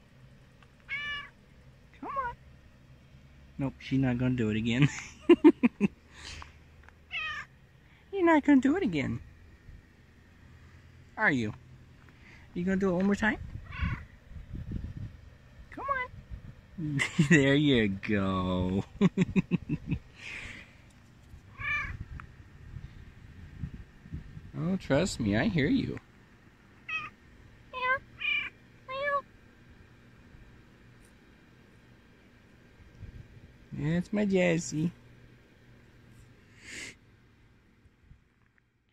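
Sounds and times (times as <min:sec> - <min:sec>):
cat meowing: 0:00.9 - 0:01.3, 0:07.1 - 0:07.5, 0:13.6 - 0:14.1, 0:21.5 - 0:22.0, 0:26.9 - 0:27.2, 0:27.8 - 0:29.2.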